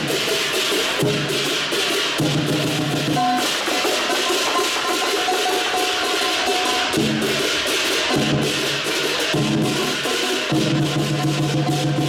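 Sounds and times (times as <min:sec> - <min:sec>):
big drum: 0:00.0 - 0:12.0
cymbals clashing: 0:00.0 - 0:12.0
ringing metallic tone: 0:02.8 - 0:10.5.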